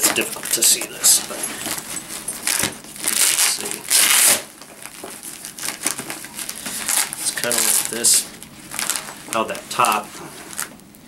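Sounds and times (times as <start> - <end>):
fabric bag rustling: 0.0 - 10.8.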